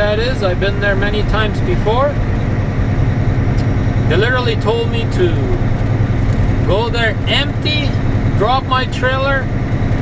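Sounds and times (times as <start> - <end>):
diesel truck engine rumble: 0.0 - 10.0
road noise: 0.0 - 10.0.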